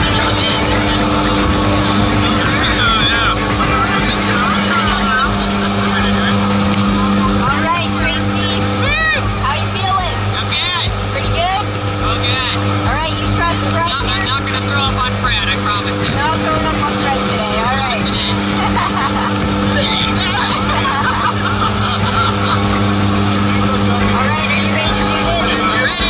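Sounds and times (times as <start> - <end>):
airplane engines droning: 0.0 - 26.0
music: 0.0 - 26.0
voices: 0.0 - 26.0.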